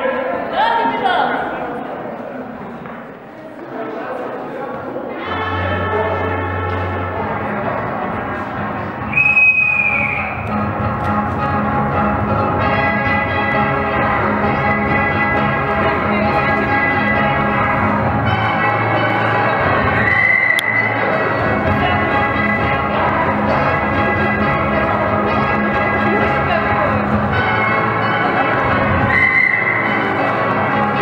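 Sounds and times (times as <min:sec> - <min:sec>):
shrill whistle blast: 0:09.0 - 0:10.5, 0:20.0 - 0:21.1, 0:29.0 - 0:30.2
ragtime dance music: 0:09.9 - 0:31.0.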